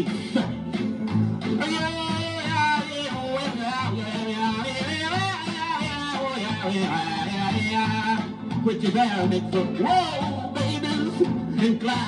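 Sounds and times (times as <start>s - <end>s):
novelty pop record playing: 0.0s - 12.0s.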